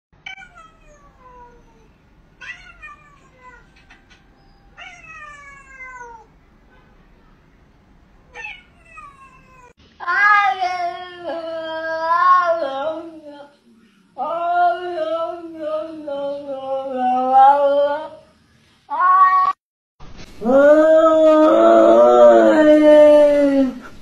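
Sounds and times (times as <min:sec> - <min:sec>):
cat meowing: 0:00.3 - 0:04.0, 0:04.7 - 0:06.3, 0:08.3 - 0:11.1, 0:18.9 - 0:19.6
cat yowling: 0:00.3 - 0:06.3, 0:08.3 - 0:11.2, 0:18.9 - 0:19.6.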